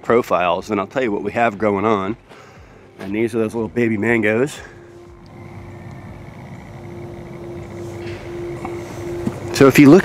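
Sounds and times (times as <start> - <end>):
engine-like drone: 2.8 - 10.0.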